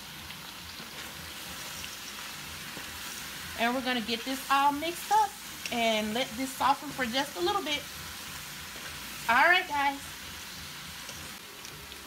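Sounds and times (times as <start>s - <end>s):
food sizzling in a pot: 0.0s - 12.0s.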